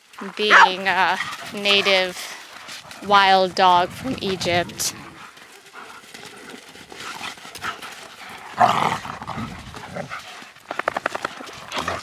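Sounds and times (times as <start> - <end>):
scuffling on dirt: 0.0 - 12.0
dogs play-growling: 0.4 - 12.0
loud snarling: 8.2 - 10.2.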